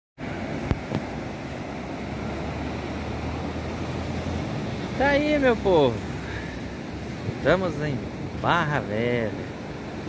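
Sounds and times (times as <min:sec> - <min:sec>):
ocean surf breaking: 0:00.2 - 0:10.0
wind buffeting microphone: 0:00.3 - 0:08.6.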